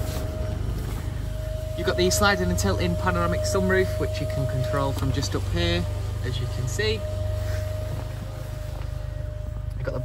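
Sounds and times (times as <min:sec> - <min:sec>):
car cabin low hum: 0:00.0 - 0:10.0
thin steady whine: 0:00.0 - 0:10.0.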